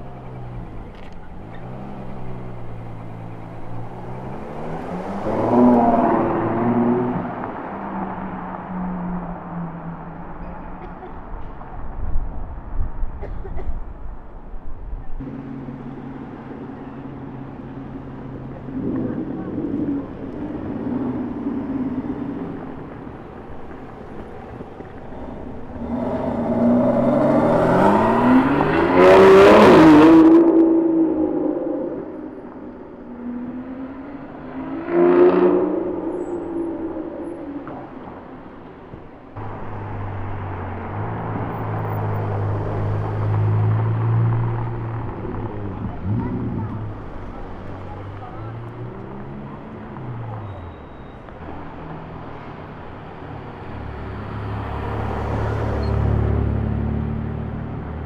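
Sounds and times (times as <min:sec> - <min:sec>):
car engine revving past: 0:00.3 - 0:08.7, 0:15.3 - 0:50.6, 0:51.7 - 0:58.0.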